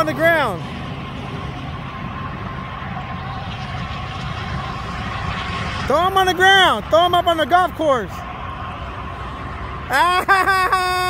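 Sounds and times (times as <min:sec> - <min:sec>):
distant road traffic rumble: 0:00.0 - 0:11.0
faint steady whine: 0:00.0 - 0:11.0.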